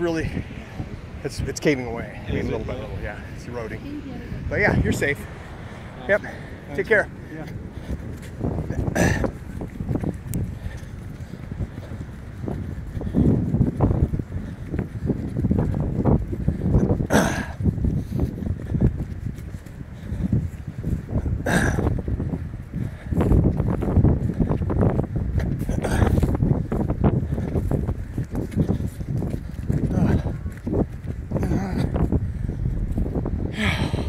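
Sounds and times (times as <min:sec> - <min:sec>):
footsteps on dirt trail: 0:00.0 - 0:34.0
wind buffeting microphone: 0:00.0 - 0:34.0.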